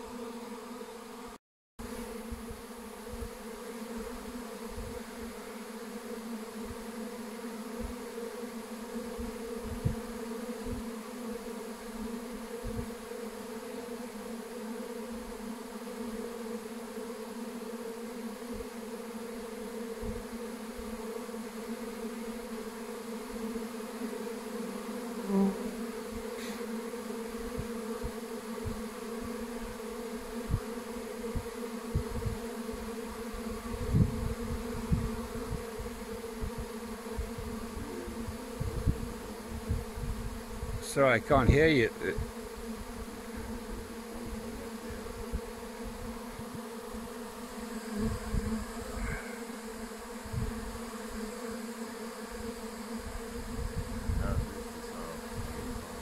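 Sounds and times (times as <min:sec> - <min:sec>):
bee swarm buzzing: 0:00.0 - 0:56.0.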